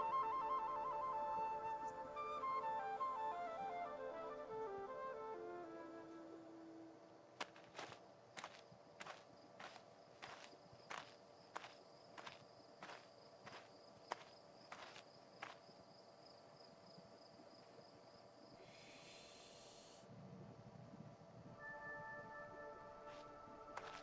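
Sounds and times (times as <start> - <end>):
soft cartoon footsteps: 7.4 - 15.8, 23.1 - 24.0.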